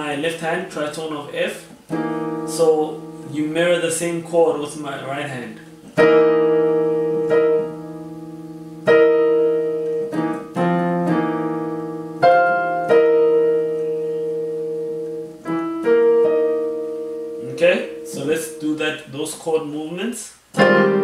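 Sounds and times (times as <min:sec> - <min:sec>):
digital piano chords: 0:00.0 - 0:19.9, 0:20.5 - 0:21.0.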